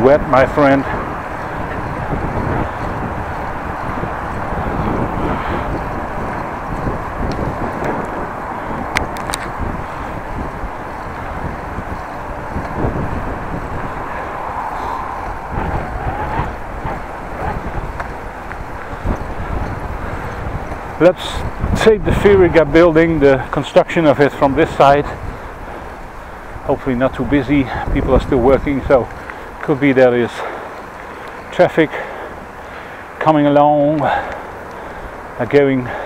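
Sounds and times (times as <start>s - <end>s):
wind noise on microphone: 0.0s - 32.8s
tyres rumbling on asphalt: 0.0s - 36.0s
faint ticks: 29.1s - 29.7s, 30.6s - 31.5s.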